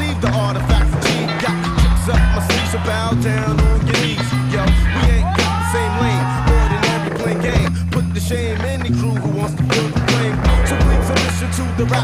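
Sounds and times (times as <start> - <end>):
skateboard clacking: 0.0 - 4.7, 6.8 - 12.0
skateboard wheels rolling: 0.0 - 5.2, 8.4 - 12.0
hip-hop beat: 0.0 - 12.0.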